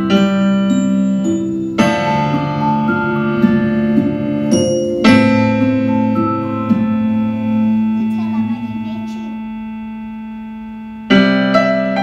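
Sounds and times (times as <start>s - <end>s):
digital piano chord: 0.0s - 12.0s.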